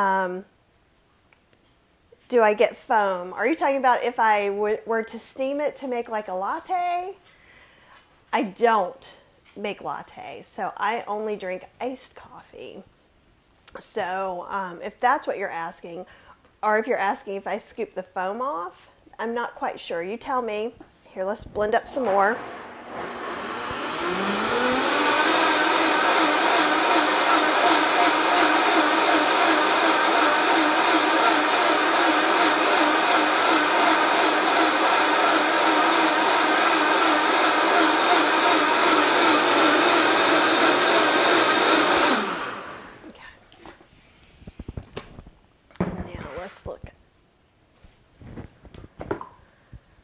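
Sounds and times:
blender motor running: 22.4 - 43.1.

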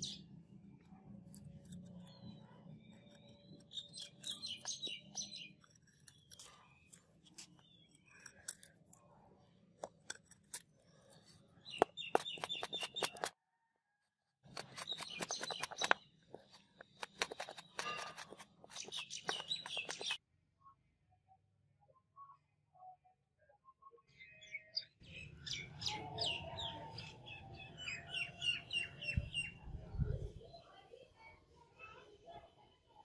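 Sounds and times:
blade shaving wood: 1.3 - 9.0, 9.8 - 13.3, 14.4 - 20.2.

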